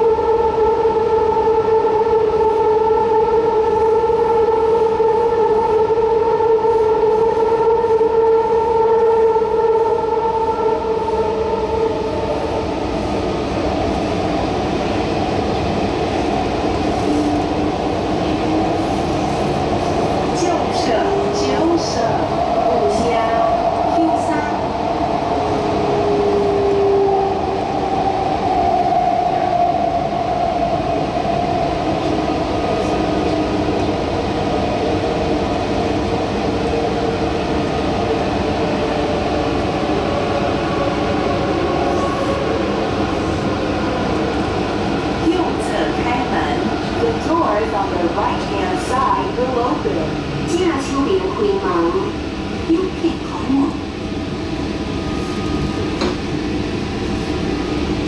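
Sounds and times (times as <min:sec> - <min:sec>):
train wheels rumbling on track: 0:07.0 - 0:58.0.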